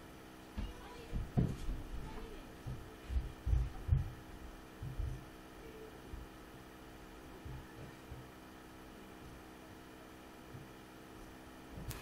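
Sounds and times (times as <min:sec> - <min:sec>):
faint steady hum: 0:00.0 - 0:12.0
soft low thumps: 0:00.5 - 0:05.5, 0:06.1 - 0:06.4, 0:07.3 - 0:08.4.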